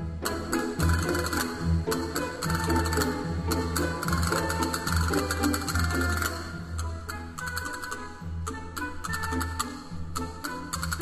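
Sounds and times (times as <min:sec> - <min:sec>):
strings: 0:00.0 - 0:11.0
castanets rattling and clicking: 0:00.6 - 0:08.1, 0:09.0 - 0:11.0.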